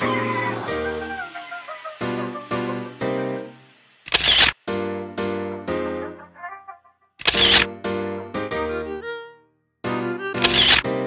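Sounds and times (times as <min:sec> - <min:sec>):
electronic camera shutter sound: 0:04.0 - 0:04.6, 0:07.2 - 0:07.7, 0:10.4 - 0:10.9.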